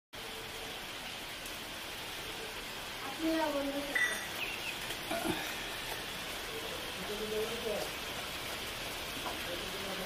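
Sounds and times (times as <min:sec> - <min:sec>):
outdoor background hiss: 0:00.2 - 0:10.0.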